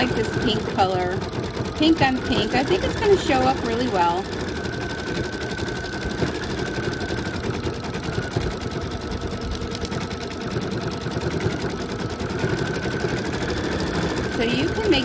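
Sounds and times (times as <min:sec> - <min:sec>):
embroidery machine stitching: 0:00.0 - 0:15.0.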